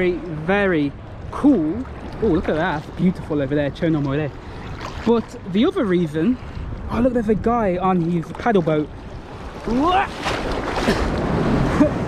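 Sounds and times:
sea water sloshing and splashing: 0.9 - 6.9, 7.8 - 12.0
wind on microphone: 4.4 - 12.0.

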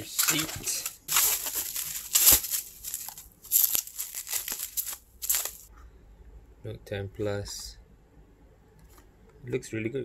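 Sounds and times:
bubble wrap crinkling: 0.2 - 5.7.

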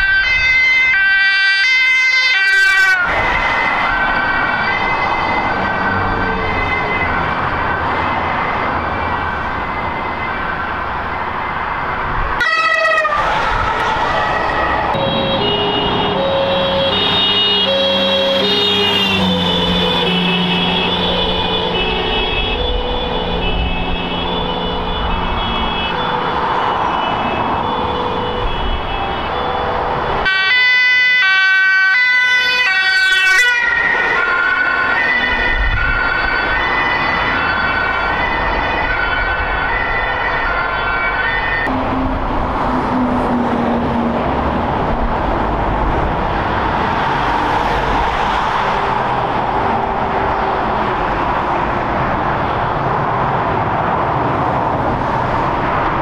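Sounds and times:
low traffic rumble: 0.0 - 56.0
two-tone sirens: 0.0 - 56.0.

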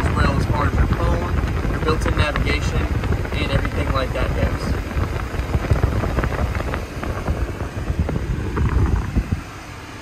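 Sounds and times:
low rumbling buffeting microphone: 0.0 - 10.0.

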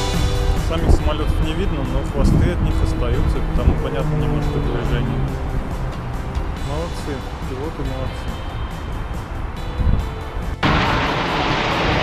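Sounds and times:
background music: 0.0 - 12.0
loud low rumble: 0.2 - 7.4, 10.6 - 12.0
people talking: 0.6 - 5.3, 6.6 - 8.3.

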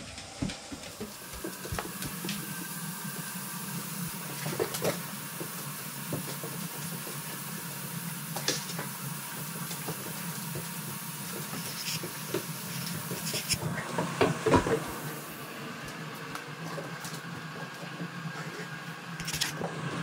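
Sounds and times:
steady hiss: 0.0 - 13.7
dog paws clicking on wood floor: 0.4 - 2.4.

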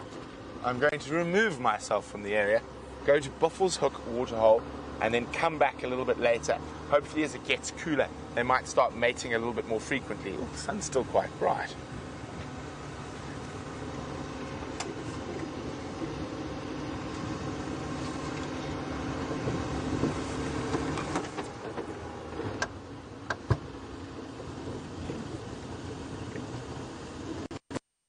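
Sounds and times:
vehicle engine running: 0.0 - 27.6
vehicle knocks and rattles: 19.4 - 23.8.

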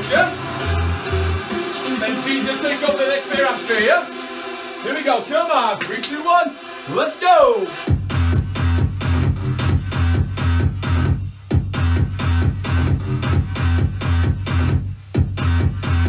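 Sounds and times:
trance dance music: 0.0 - 16.0.

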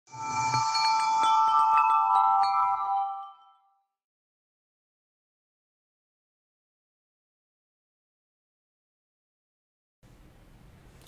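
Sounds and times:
shimmering swish: 0.1 - 1.8
chiming jingle: 0.1 - 4.0.

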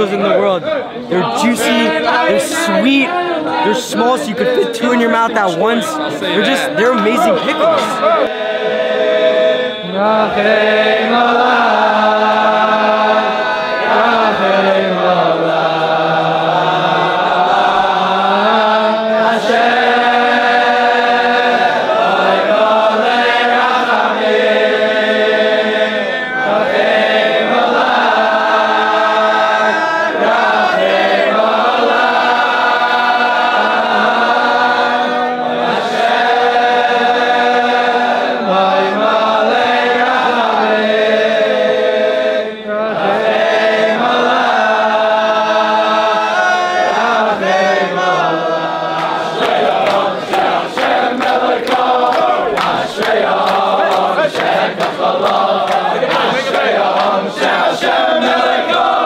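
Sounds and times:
men singing in unison: 1.1 - 59.0.

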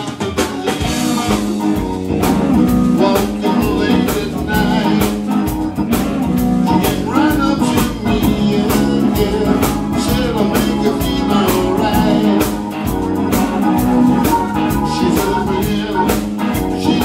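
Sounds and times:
bass: 0.0 - 17.0
electric guitar: 0.0 - 17.0
keyboard: 0.0 - 17.0
steady drum beat: 0.0 - 17.0.

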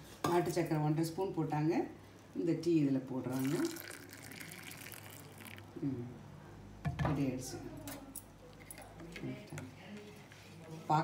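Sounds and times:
tea pouring into steel tumbler: 3.3 - 5.7.

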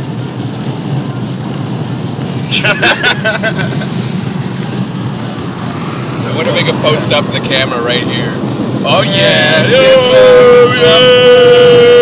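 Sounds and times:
road and engine noise in car: 0.0 - 12.0.

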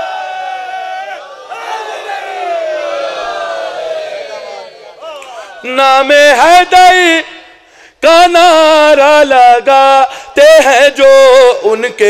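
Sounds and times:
audience shouting in unison: 0.0 - 5.7.

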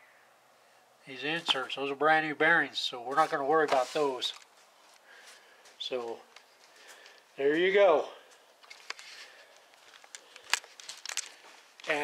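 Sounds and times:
camera handling rustling and clicks: 8.6 - 11.4.

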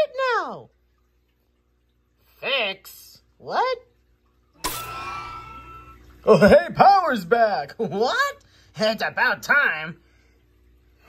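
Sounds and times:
steady hum with ringing tones: 4.2 - 11.0.

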